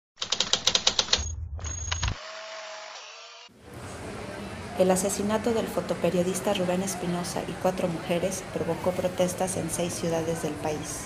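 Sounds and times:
typewriter keystrokes: 0:00.2 - 0:01.3.

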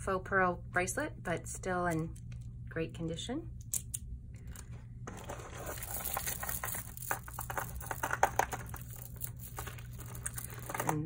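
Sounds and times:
plastic bag crinkling: 0:05.1 - 0:11.0.

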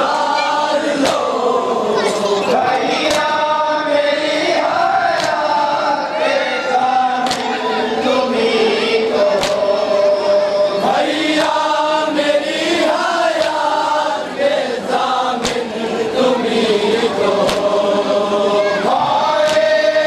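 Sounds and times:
men chanting in unison: 0:00.0 - 0:20.0
hands slapping chests: 0:01.0 - 0:01.4, 0:03.0 - 0:03.5, 0:05.1 - 0:05.6, 0:07.2 - 0:07.6, 0:09.4 - 0:09.7, 0:12.9 - 0:14.0, 0:15.3 - 0:15.8, 0:17.4 - 0:17.8, 0:19.0 - 0:19.9.

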